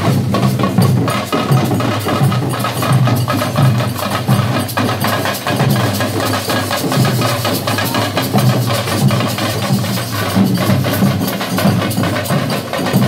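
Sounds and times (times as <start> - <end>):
barrel drums beaten with sticks: 0.0 - 13.0.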